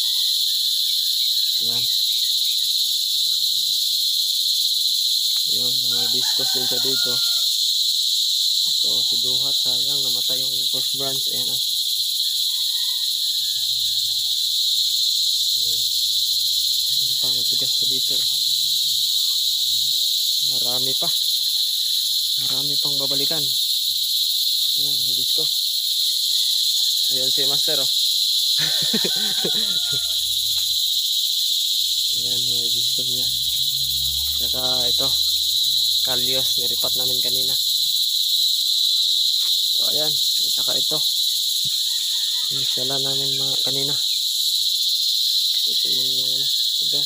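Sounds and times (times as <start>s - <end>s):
insects chirring: 0.0s - 47.0s.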